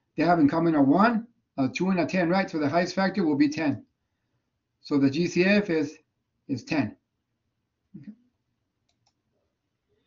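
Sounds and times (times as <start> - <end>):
computer mouse clicks: 8.8 - 9.3.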